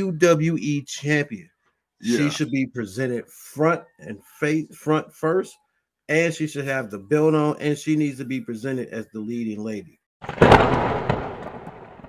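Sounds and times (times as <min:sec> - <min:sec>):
loud boom sound effect: 0:10.2 - 0:12.0.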